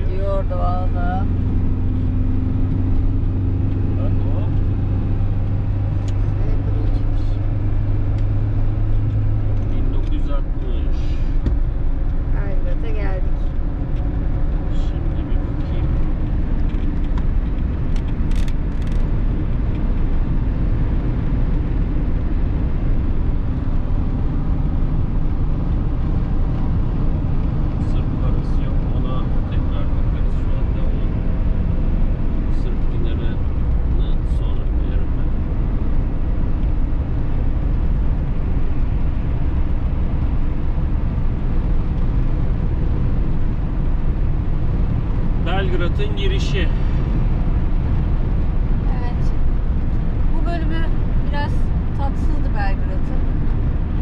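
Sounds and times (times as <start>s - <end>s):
van engine and tyre rumble: 0.0s - 54.0s.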